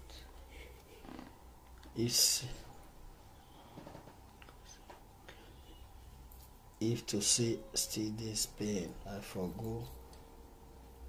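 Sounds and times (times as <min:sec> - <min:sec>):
faint room background: 0:00.0 - 0:11.0.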